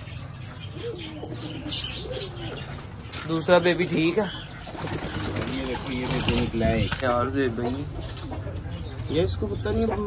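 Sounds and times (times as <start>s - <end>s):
pigeons cooing: 0.0s - 10.0s.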